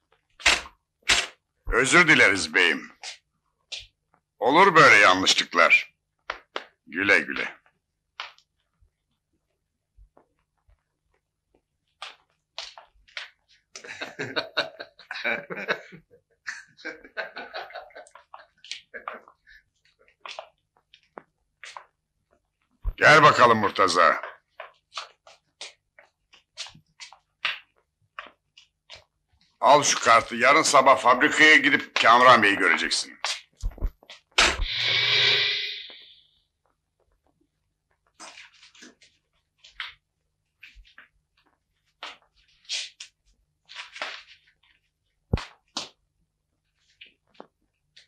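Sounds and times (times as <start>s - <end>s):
men snickering: 13.8s - 19.3s.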